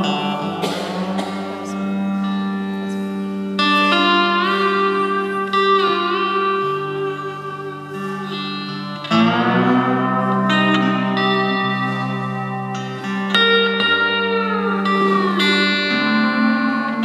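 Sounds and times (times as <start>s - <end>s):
electric lap steel guitar: 0.0s - 17.0s.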